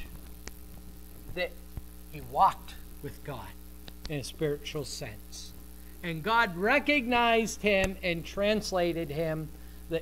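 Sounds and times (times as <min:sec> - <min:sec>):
electrical mains hum: 0:00.0 - 0:10.0
faint clicks: 0:03.8 - 0:04.2.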